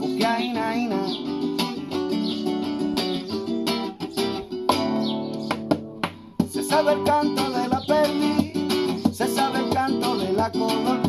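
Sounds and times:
classical guitar strummed chords: 0.0 - 11.0.

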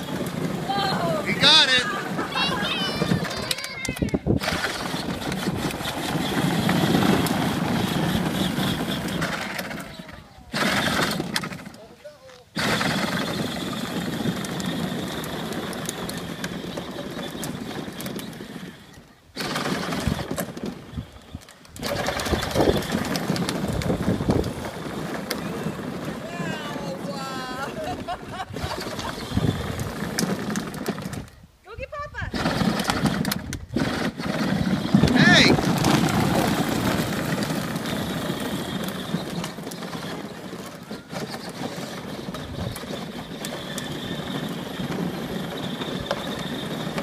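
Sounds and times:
voices outdoors: 0.0 - 6.4, 7.9 - 13.3, 24.9 - 33.0, 33.8 - 44.6.

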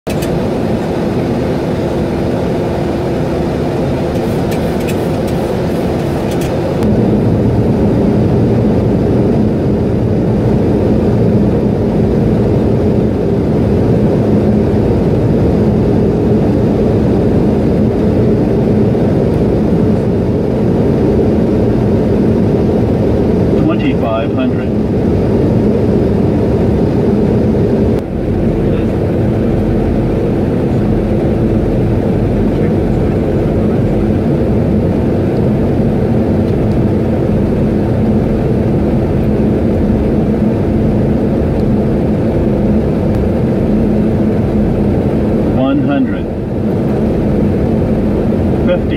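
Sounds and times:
airliner engines rumbling in cabin: 0.0 - 48.9.

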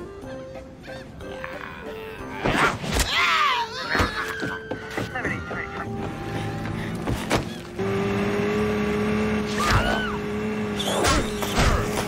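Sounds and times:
cartoon speedboat engine drone: 5.2 - 12.0.

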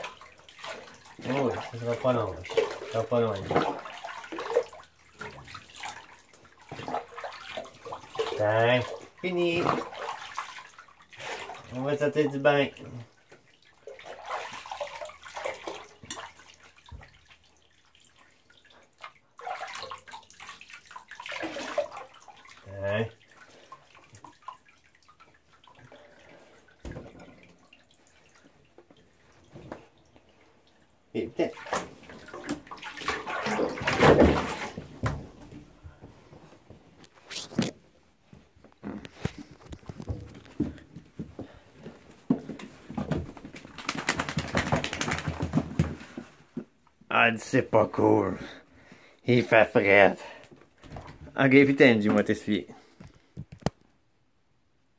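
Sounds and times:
water splashing in a bathtub: 0.0 - 54.0.

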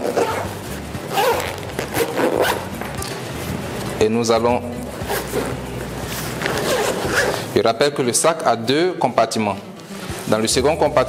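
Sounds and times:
zip being pulled closed: 0.0 - 2.8, 5.0 - 7.6.

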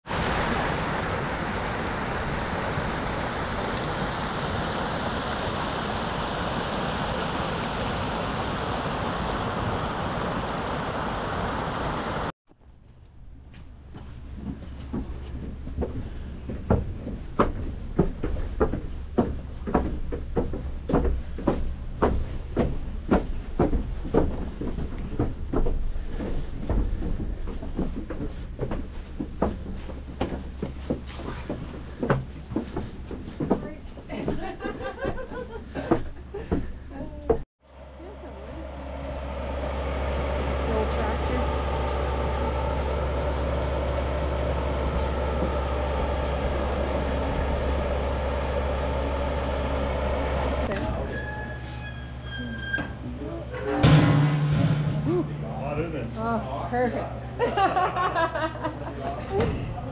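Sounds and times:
water rushing over rocks: 0.1 - 12.3
footsteps on wooden stairs: 13.5 - 37.4, 40.7 - 50.7.

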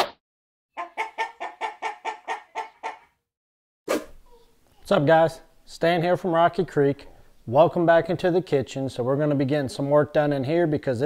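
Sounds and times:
chicken clucking: 0.8 - 3.2.

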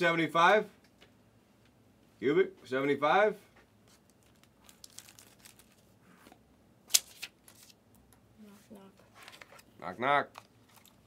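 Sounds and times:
plastic packaging crinkling: 3.9 - 6.0.

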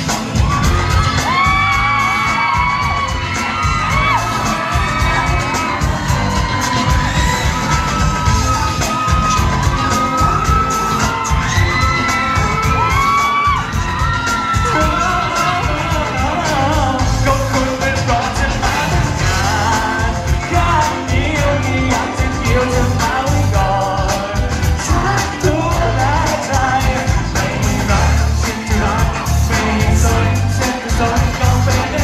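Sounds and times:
crowd screaming and cheering: 0.0 - 32.0
pop dance music with heavy beat: 0.0 - 32.0.

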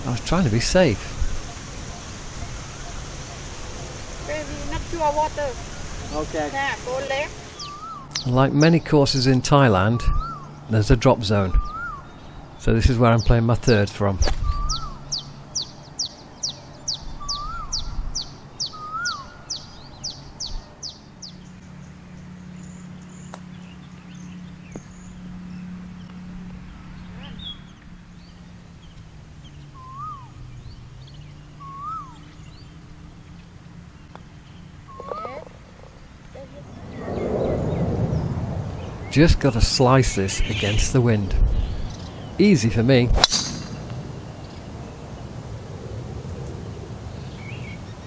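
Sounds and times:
whistled bird notes: 7.3 - 8.3, 10.0 - 10.6, 11.6 - 12.4, 14.3 - 21.4, 29.5 - 32.8, 34.4 - 35.5
high descending bird chirps: 16.9 - 20.2, 36.4 - 39.4
golf club striking ball: 43.1 - 44.3.

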